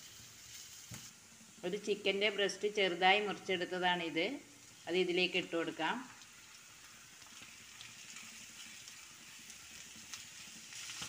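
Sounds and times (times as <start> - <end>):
chicken and onions frying: 0.0 - 11.0.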